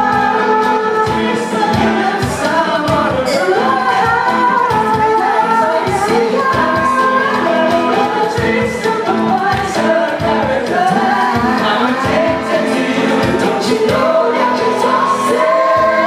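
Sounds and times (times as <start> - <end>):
band accompaniment with beat: 0.0 - 16.0
vocal group singing in harmony: 0.0 - 16.0.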